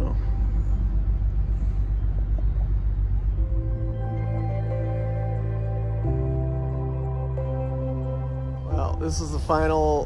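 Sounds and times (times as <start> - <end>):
boat motor rumbling: 0.0 - 10.0
soft ambient music: 0.0 - 10.0.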